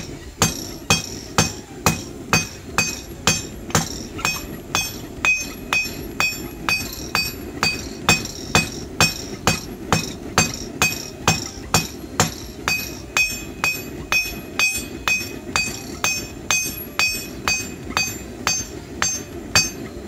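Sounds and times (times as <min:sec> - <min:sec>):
hammer striking metal on anvil: 0:00.0 - 0:20.0.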